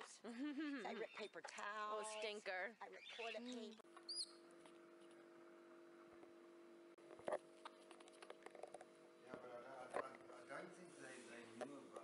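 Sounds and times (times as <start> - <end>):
faint steady hum: 0.0 - 12.0
baby monkey squeak: 2.9 - 4.4.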